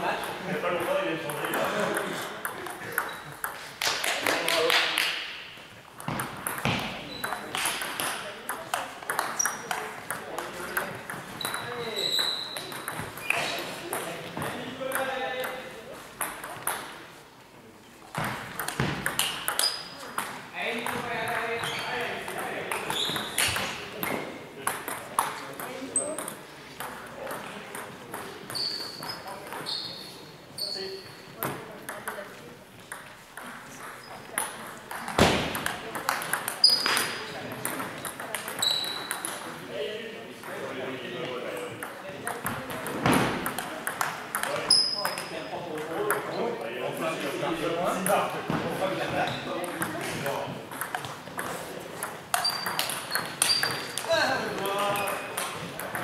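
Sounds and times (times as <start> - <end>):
voices echoing in a hall: 0.0 - 56.0
table tennis balls clicking: 1.3 - 5.1, 5.9 - 17.0, 18.0 - 29.7, 31.4 - 39.6, 41.7 - 46.3, 49.6 - 56.0.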